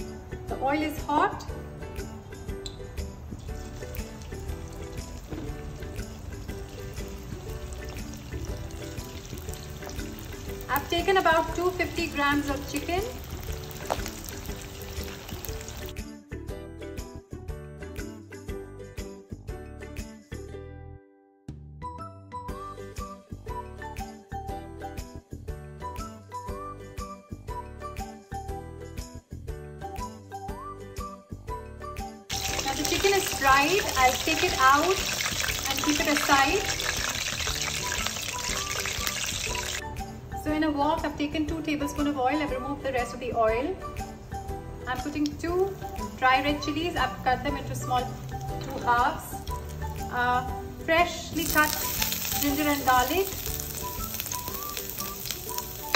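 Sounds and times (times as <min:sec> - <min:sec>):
background music: 0:00.0 - 0:55.9
chicken frying in hot oil: 0:03.4 - 0:16.0, 0:32.3 - 0:39.8, 0:51.3 - 0:55.9.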